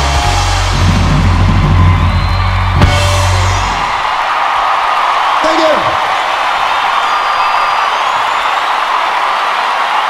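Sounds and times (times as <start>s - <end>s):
crowd cheering and applauding: 0.0s - 10.0s
whistles: 1.8s - 3.0s, 7.0s - 8.8s.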